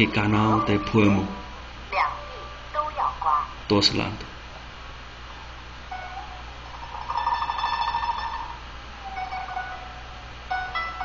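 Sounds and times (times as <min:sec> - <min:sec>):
faint instrumental music: 0:00.0 - 0:04.0, 0:05.8 - 0:11.0.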